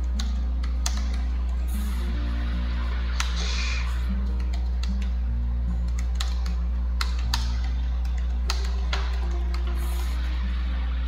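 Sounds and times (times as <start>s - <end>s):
computer keyboard typing: 0.0s - 1.6s, 5.8s - 9.7s
soft background music: 0.0s - 11.0s
steady low hum: 0.0s - 11.0s.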